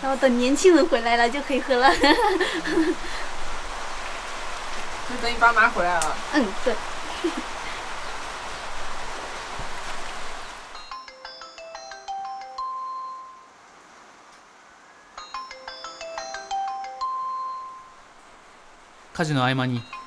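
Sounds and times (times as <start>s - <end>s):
steady hiss: 0.0s - 12.1s, 13.4s - 20.0s
smartphone ringing melody: 10.8s - 13.5s, 15.2s - 18.1s.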